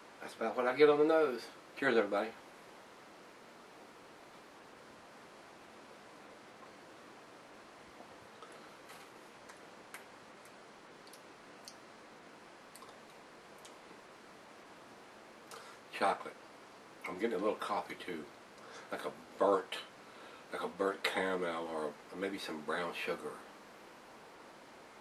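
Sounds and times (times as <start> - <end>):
faint small clicks: 8.0 - 11.8, 12.7 - 13.8, 15.4 - 15.7.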